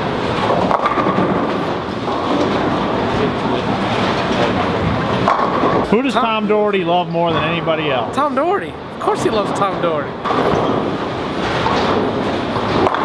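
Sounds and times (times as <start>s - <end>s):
bowling pins crashing: 0.0s - 5.9s, 10.1s - 13.0s
bowling balls rolling on lanes: 0.0s - 13.0s.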